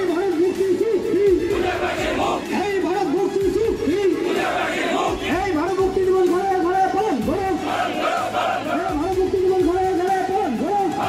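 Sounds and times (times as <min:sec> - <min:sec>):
crowd of men chanting: 0:01.4 - 0:02.6, 0:04.1 - 0:05.4, 0:07.5 - 0:09.0.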